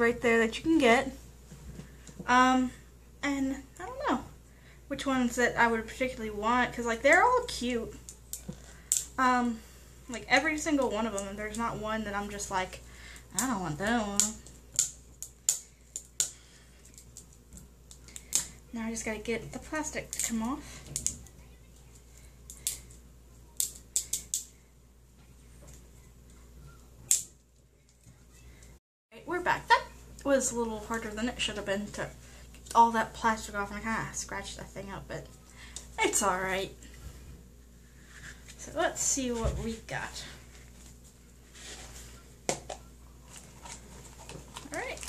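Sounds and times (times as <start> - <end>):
plastic wrapping crinkling and snapping: 42.5 - 45.0
plastic packaging clicks: 43.6 - 45.0.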